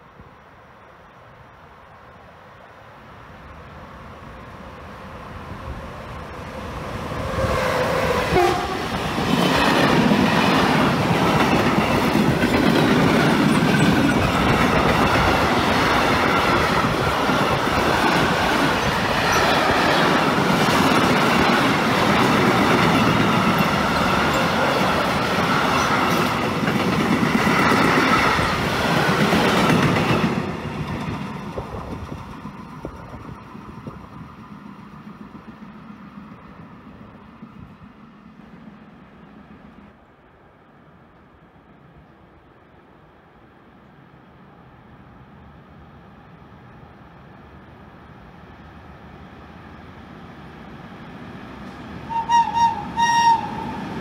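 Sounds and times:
freight train wheels clickety-clack: 7.0 - 39.7
train horn: 7.3 - 8.9, 52.1 - 54.0.

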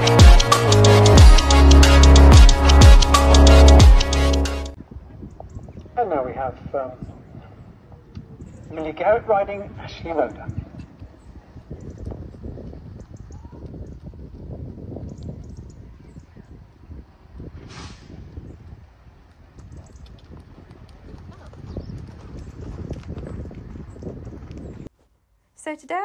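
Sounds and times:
hoofbeats on soft arena: 18.6 - 24.9.

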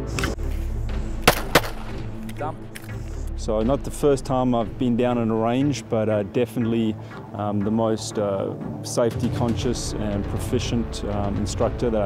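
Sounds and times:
background music: 0.0 - 12.0
pistol shots: 1.2 - 2.0.

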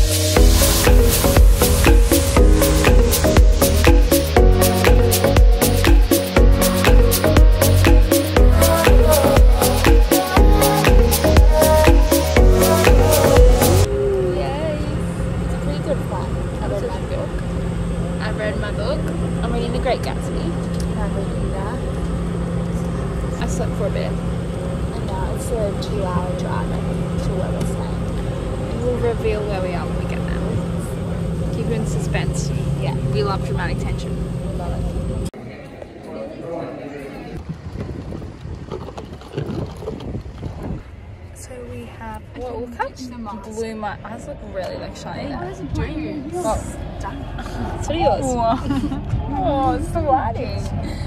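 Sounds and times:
low rumble: 0.0 - 35.4
airliner cabin drone: 0.0 - 37.7
wind buffeting microphone: 37.0 - 51.0.

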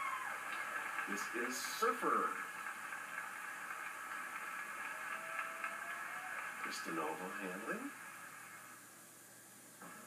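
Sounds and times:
television background hiss: 0.0 - 10.0.

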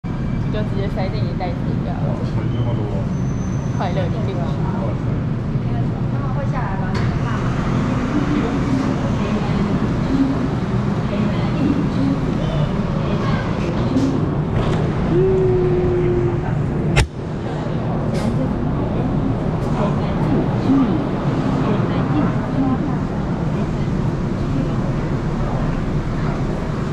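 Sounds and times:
low train rumble: 0.0 - 26.9
crowd chatter: 3.8 - 26.9
sharp knock: 17.0 - 17.2.

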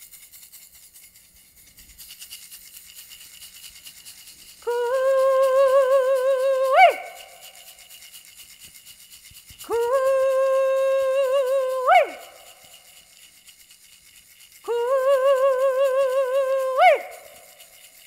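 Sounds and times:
hand rattle shaking: 0.0 - 18.0
woman singing long held notes: 4.6 - 7.7, 9.6 - 12.8, 14.6 - 17.7.

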